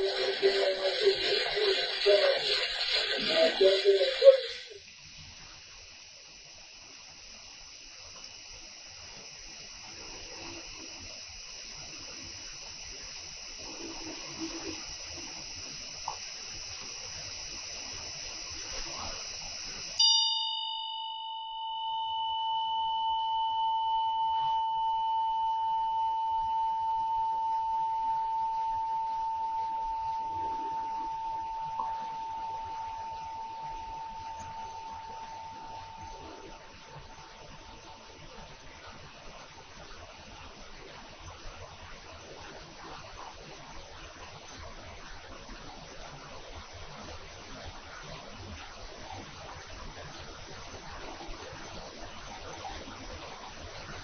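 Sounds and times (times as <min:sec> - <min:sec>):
bell strike: 0:20.0 - 0:25.0
hand bell ringing: 0:20.0 - 0:25.0.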